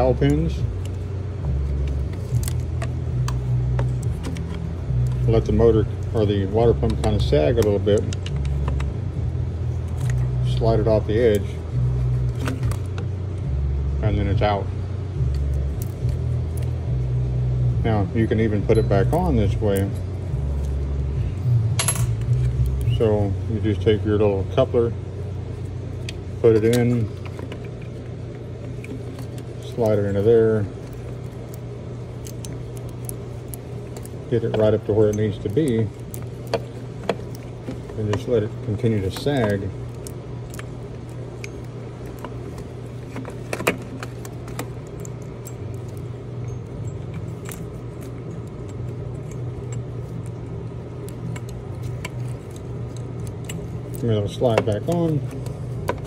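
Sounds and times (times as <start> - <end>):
steady low hum: 0.0 - 56.0
steady low rumble: 0.0 - 56.0
metal clinking against metal: 21.7 - 22.3.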